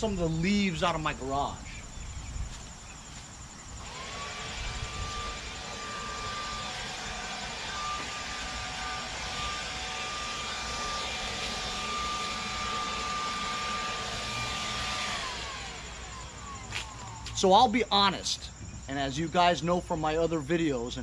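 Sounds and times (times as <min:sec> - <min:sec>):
leaf blower motor whine: 0:00.0 - 0:18.1.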